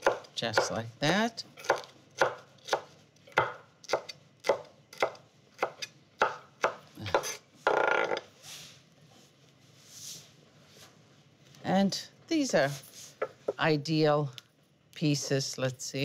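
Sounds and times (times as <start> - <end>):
knife chopping on wooden board: 0.0 - 7.4.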